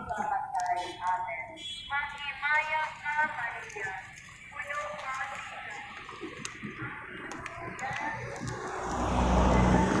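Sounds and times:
car passing close by: 8.6 - 10.0.

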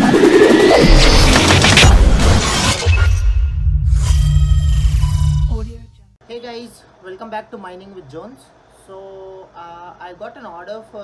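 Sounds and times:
glass shatter sound effect: 0.8 - 5.4.

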